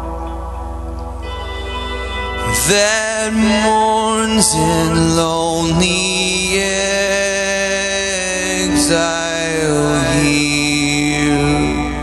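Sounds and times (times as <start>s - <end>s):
acoustic guitar: 0.0s - 12.0s
man singing a long note: 1.9s - 12.0s.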